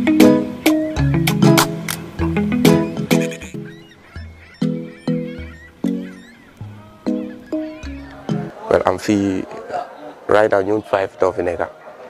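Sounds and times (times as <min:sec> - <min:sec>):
plucked notes over low beat: 0:00.0 - 0:08.6.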